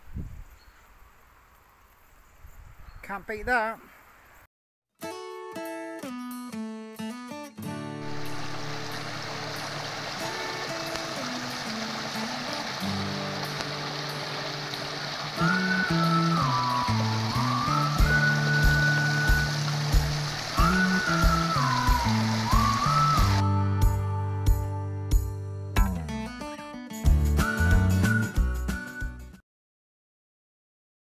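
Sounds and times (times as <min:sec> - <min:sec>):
stream water rushing: 0:08.0 - 0:23.5
background music with beat: 0:15.9 - 0:26.4, 0:27.0 - 0:29.4.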